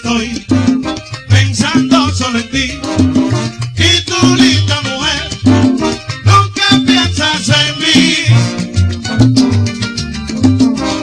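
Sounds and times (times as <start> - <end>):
man singing: 0.0 - 8.7
pulsing bass line: 0.0 - 11.0
salsa band playing: 0.0 - 11.0.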